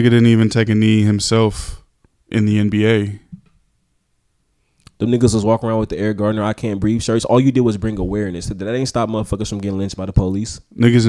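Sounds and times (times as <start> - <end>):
man speaking: 0.0 - 3.4, 4.9 - 11.0.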